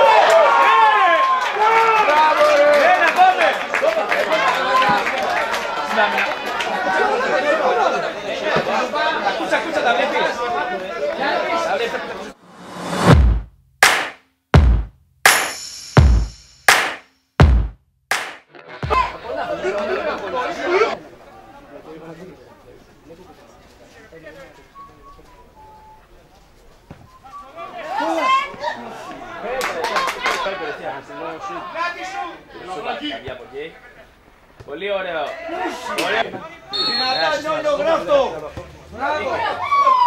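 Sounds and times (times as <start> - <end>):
crowd of overlapping voices: 2.7 - 12.8, 18.5 - 40.0
voices shouting and calling: 35.3 - 40.0.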